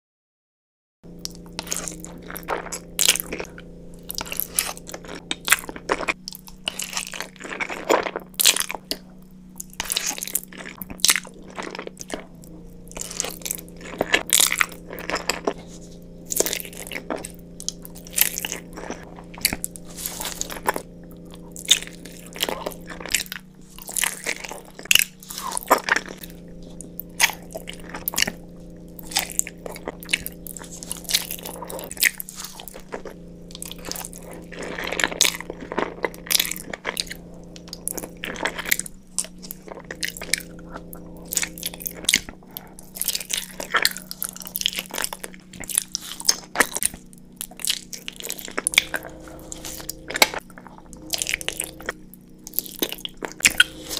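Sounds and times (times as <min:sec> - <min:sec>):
food being bitten and chewed: 0:01.1 - 0:53.9
mouth clicks: 0:47.5 - 0:53.9.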